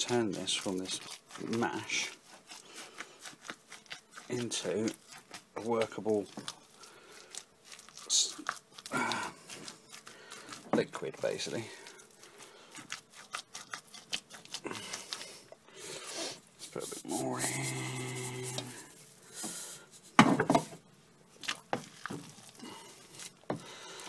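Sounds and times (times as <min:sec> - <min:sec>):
spoon scraping thick mash in pot: 0:00.0 - 0:20.7, 0:21.4 - 0:24.0.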